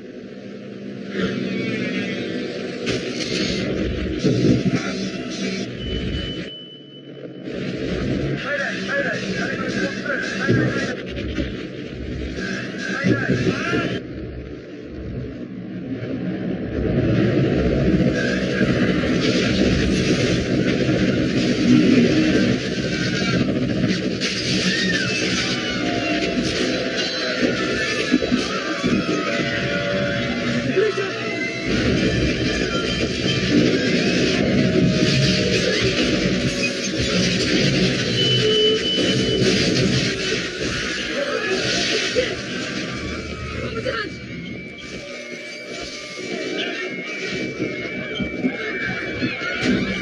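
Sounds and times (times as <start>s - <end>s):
helicopter rumbling: 0.0s - 6.5s, 7.1s - 50.0s
helicopter rotor and engine: 17.3s - 29.2s.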